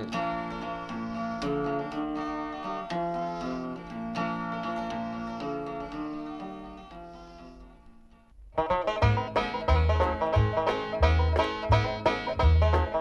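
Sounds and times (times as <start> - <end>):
plucked-string country intro: 0.0 - 13.0
country song: 8.6 - 13.0
steady bass beat: 8.9 - 13.0.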